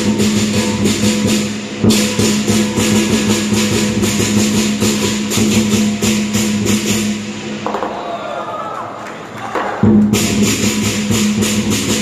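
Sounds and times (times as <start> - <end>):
big drum beating: 0.0 - 8.1, 9.6 - 12.0
cymbals clashing: 0.0 - 8.6, 9.6 - 12.0.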